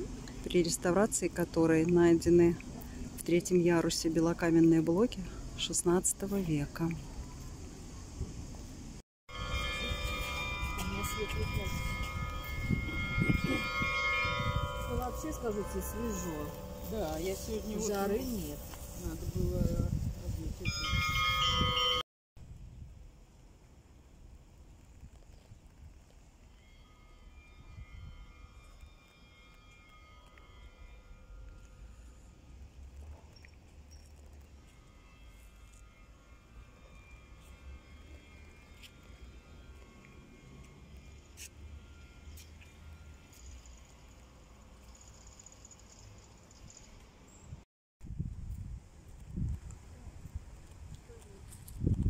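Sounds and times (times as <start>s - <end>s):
person speaking: 14.9s - 20.9s.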